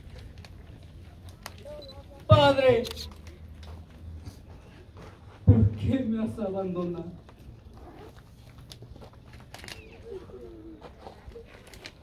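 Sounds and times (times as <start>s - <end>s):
dove cooing: 9.8s - 11.5s.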